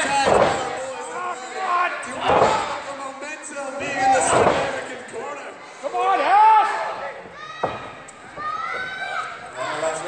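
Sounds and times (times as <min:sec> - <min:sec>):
body hitting wrestling ring: 0:00.1 - 0:00.8.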